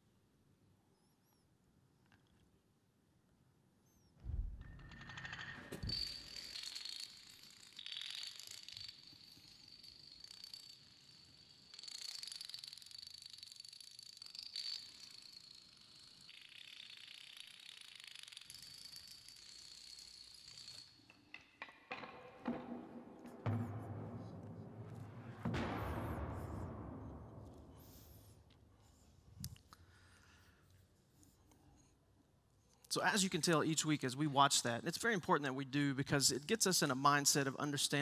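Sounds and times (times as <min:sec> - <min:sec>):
dominoes toppling on concrete: 0:04.6 - 0:22.6.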